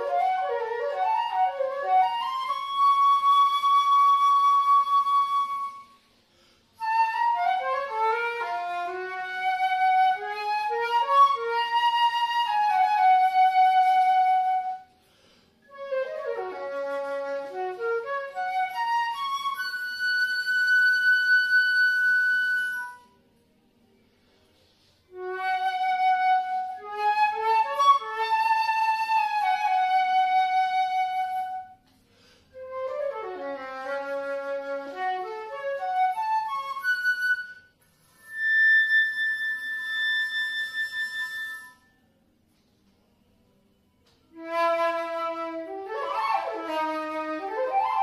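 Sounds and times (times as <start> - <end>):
flute holding high note: 15.6 - 23.4, 25.0 - 42.2, 44.3 - 48.0.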